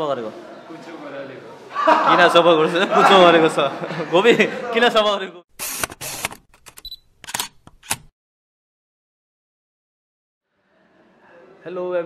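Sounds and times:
sharp shutter clicks: 5.6s - 8.1s.

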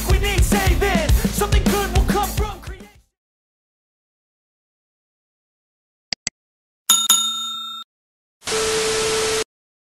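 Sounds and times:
bell-like ding: 6.9s - 7.9s.

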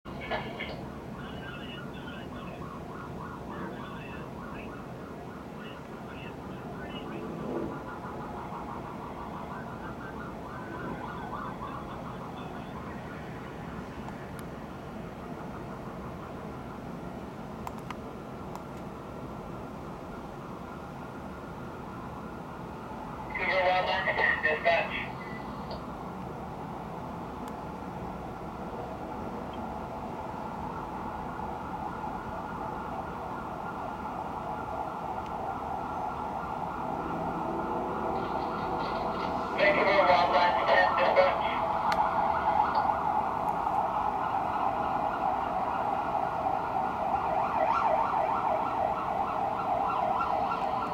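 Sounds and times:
police car siren wailing: 0.1s - 17.6s, 18.2s - 50.9s
distant city hum: 0.1s - 50.9s.

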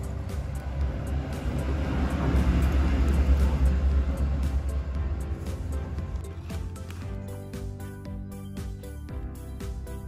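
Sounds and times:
low rumble: 0.0s - 6.3s
background music: 0.0s - 10.0s.

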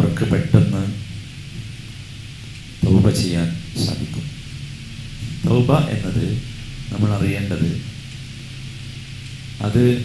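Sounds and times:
man talking: 0.0s - 1.1s, 2.8s - 4.3s, 5.2s - 8.0s, 9.6s - 10.0s
low hum: 0.0s - 10.0s
microphone hiss: 0.0s - 10.0s.

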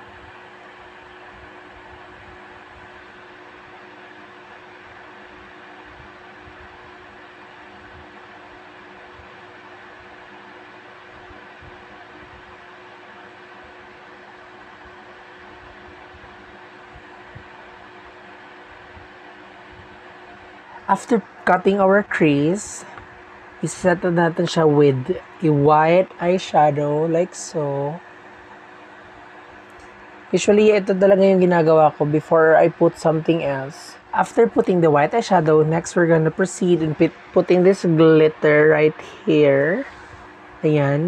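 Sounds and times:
background hum and hiss: 0.0s - 41.0s.

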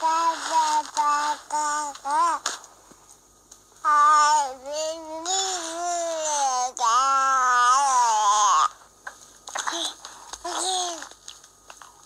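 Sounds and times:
small child vocalizing: 3.9s - 8.7s, 9.6s - 11.1s.

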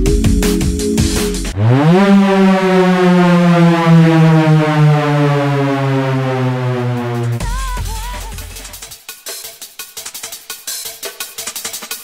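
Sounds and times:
synthesizer note sliding down: 1.6s - 8.0s.

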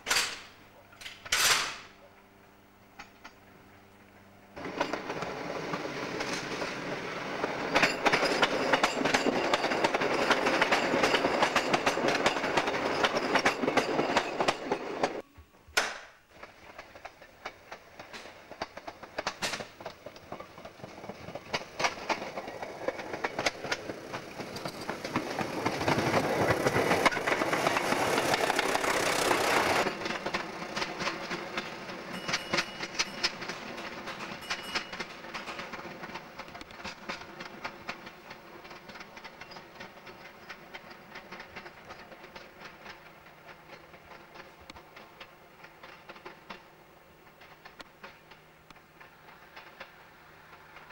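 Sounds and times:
diesel train engine: 2.0s - 15.2s, 16.3s - 50.9s
train wheels clattering over rails: 4.6s - 15.2s, 16.3s - 50.9s.

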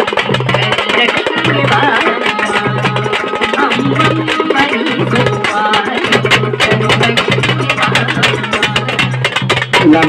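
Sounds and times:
barrel drum fast rhythm: 0.0s - 10.0s
frame drums struck with sticks: 0.0s - 10.0s.

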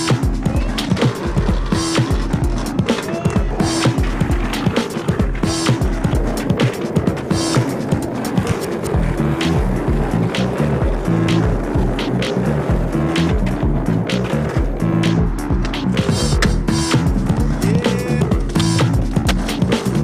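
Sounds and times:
background music with bass line: 0.0s - 20.0s
skateboard clacks and knocks: 0.0s - 20.0s
skateboard wheels rolling: 0.0s - 20.0s.

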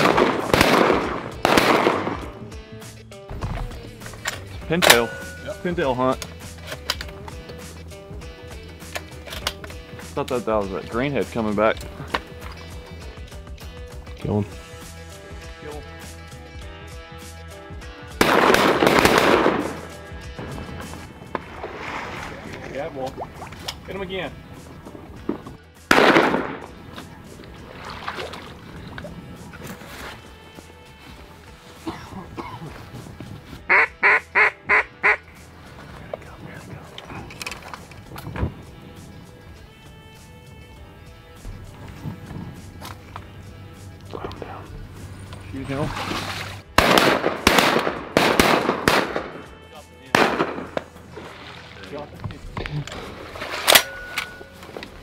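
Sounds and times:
loud sharp bangs: 0.0s - 2.3s, 18.2s - 19.8s, 25.9s - 26.8s, 46.8s - 49.5s, 50.2s - 50.9s
duck quacks: 33.7s - 35.3s.

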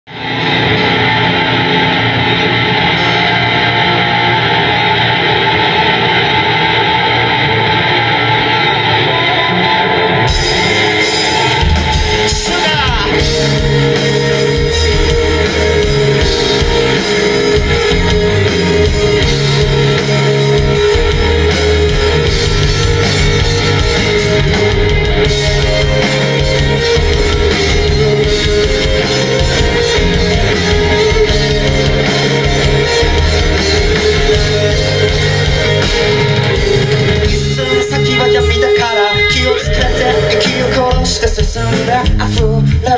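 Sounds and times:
live rock band: 0.1s - 42.9s
steady drum beat: 10.3s - 42.9s.

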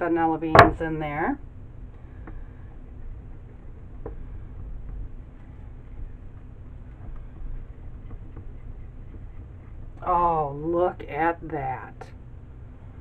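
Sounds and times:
steady low hum: 0.0s - 13.0s
spatula scraping plastic cup: 5.2s - 10.0s.

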